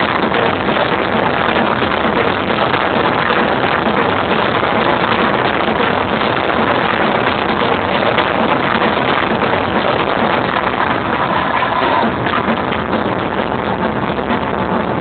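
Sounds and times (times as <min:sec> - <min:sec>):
distorted dance music and crowd roar: 0:00.0 - 0:15.0.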